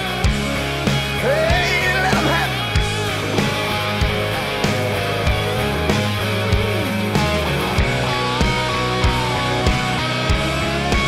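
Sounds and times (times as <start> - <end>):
bass line: 0.0 - 11.0
electric guitar lead: 0.0 - 11.0
steady drum beat: 0.0 - 11.0.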